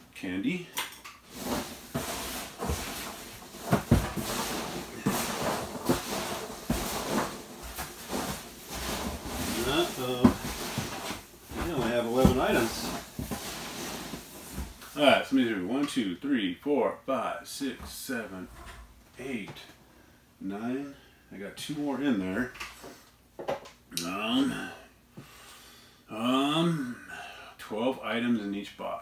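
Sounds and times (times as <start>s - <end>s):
packing peanuts rustling: 1.2s - 15.0s.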